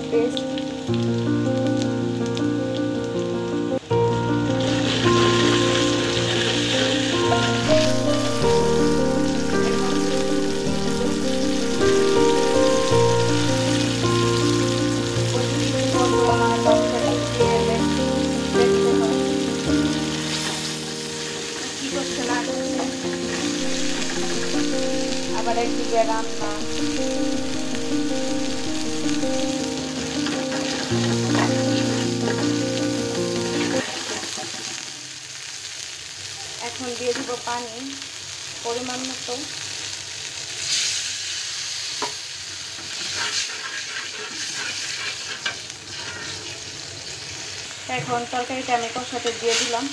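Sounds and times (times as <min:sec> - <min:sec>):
background music with held chords: 0:00.0 - 0:33.8
onions sizzling in oil: 0:00.0 - 0:49.9
metal spatula scraping pot: 0:42.9 - 0:46.7.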